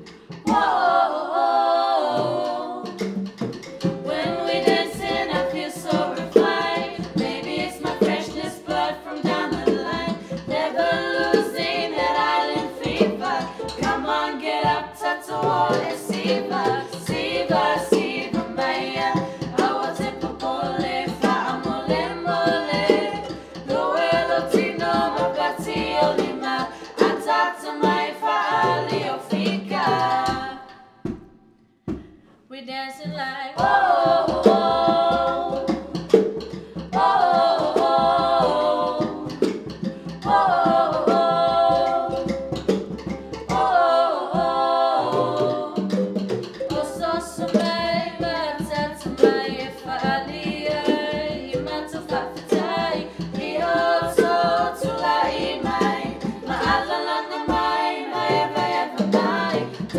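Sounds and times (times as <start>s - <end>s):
women singing in harmony: 0.0s - 31.2s, 32.5s - 59.9s.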